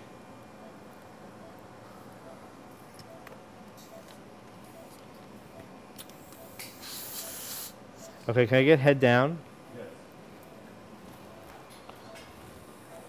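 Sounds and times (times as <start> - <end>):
faint repeating beep: 0.6 - 5.7
gas hissing: 6.2 - 7.8.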